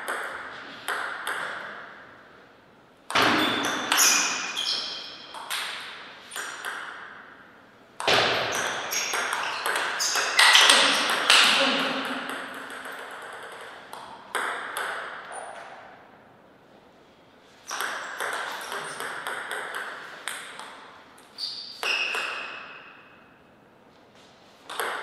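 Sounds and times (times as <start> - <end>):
table tennis ball rallies: 3.1 - 7.3, 8.0 - 15.8, 17.6 - 23.2, 24.7 - 25.0.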